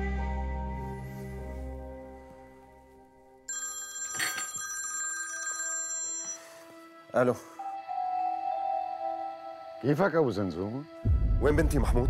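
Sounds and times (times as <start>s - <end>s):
phone ringing: 3.5s - 6.9s.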